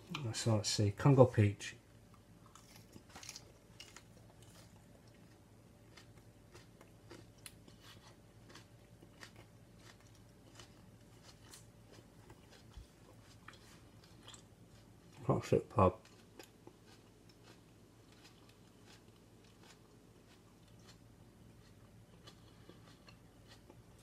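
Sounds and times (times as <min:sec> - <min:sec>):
person chewing crunchy chilli: 0:02.1 - 0:24.0.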